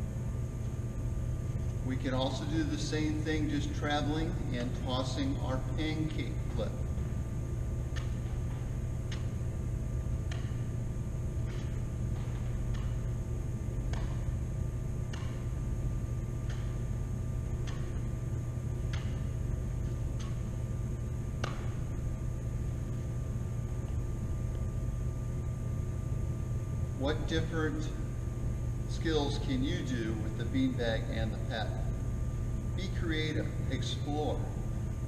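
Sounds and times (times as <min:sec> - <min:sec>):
ventilation hum: 0:00.0 - 0:35.0.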